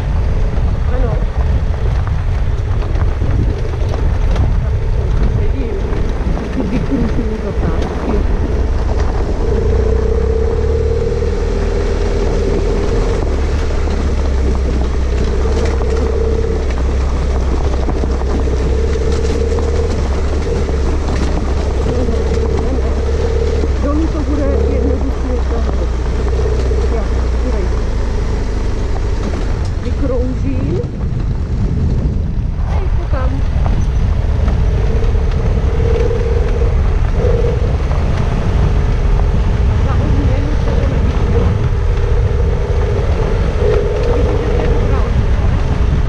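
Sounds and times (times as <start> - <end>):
motorcycle engine running: 0.0 - 46.0
wind buffeting microphone: 0.0 - 46.0.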